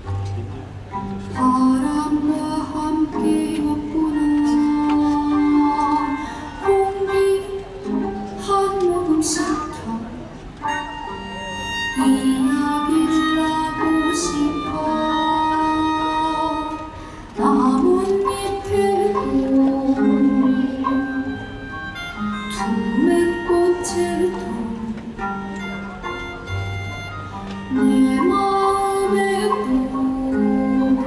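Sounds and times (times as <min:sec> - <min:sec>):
soft instrumental accompaniment: 0:00.0 - 0:31.0
woman singing slow melody: 0:01.3 - 0:10.3, 0:12.0 - 0:21.8, 0:22.5 - 0:25.2, 0:27.7 - 0:31.0.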